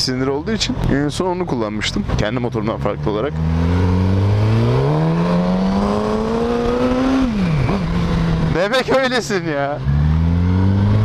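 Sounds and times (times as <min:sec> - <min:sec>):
motorcycle engine accelerating: 0:02.4 - 0:11.0.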